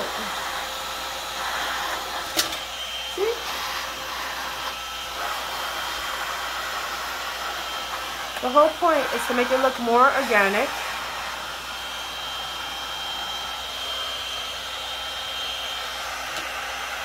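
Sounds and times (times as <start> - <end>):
heat gun blowing hot air: 0.0 - 17.0.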